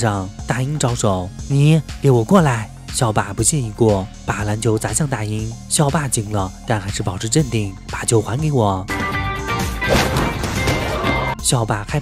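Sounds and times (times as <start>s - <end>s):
background music: 0.0s - 12.0s
crash and clatter: 9.8s - 11.4s.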